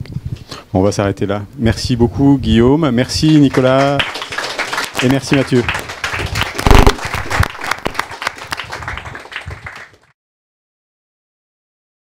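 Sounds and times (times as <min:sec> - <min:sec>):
audience applauding: 0:03.2 - 0:10.1
short loud pitched sound: 0:06.6 - 0:07.5.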